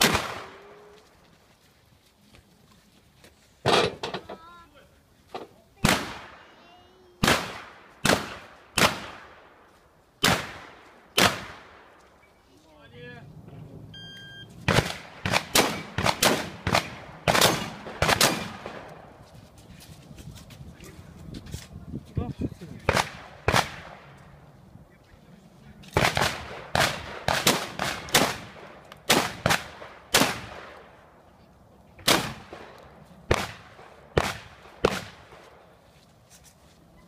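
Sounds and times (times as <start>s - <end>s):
shotgun shots with echo: 0.0s - 0.6s, 5.8s - 6.4s, 7.2s - 9.5s, 10.2s - 11.9s, 14.7s - 19.0s, 22.9s - 24.1s, 26.0s - 30.9s, 32.0s - 35.4s.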